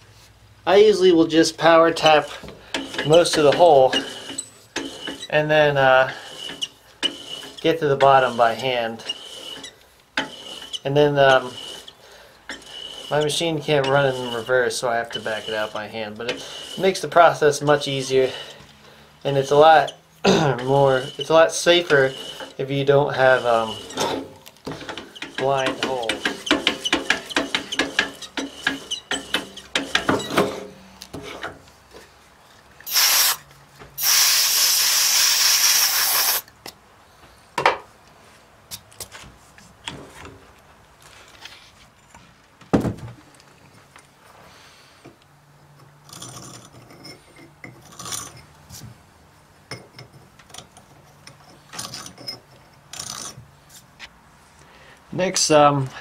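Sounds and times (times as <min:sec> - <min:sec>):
metal clicks knocks and scrapes: 0:02.0 - 0:05.3, 0:09.0 - 0:10.8, 0:23.2 - 0:32.8, 0:45.0 - 0:49.0, 0:49.7 - 0:54.2
loud steady hiss: 0:32.8 - 0:36.5.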